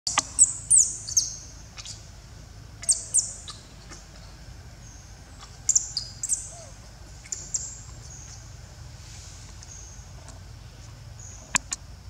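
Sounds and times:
birds chirping: 0.1s - 11.7s.

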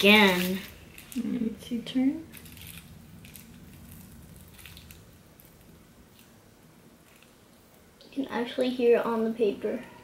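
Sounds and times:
magnet clicks and crackles: 0.0s - 1.4s, 2.3s - 6.4s, 7.0s - 7.9s
low room hum: 0.0s - 10.0s.

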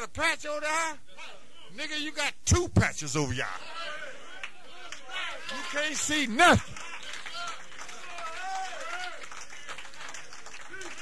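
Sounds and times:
audience voices reacting: 3.4s - 9.1s.

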